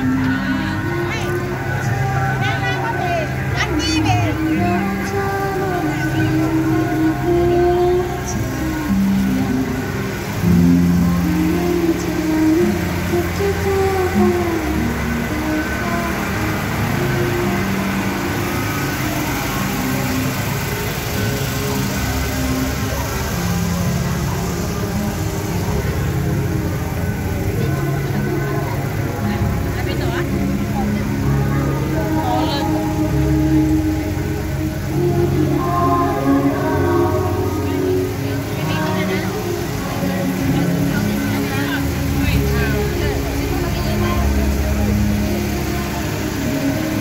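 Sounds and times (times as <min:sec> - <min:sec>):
crowd voices: 0:00.0 - 0:47.0
music over loudspeakers: 0:00.0 - 0:47.0
vehicle engines running: 0:00.0 - 0:47.0.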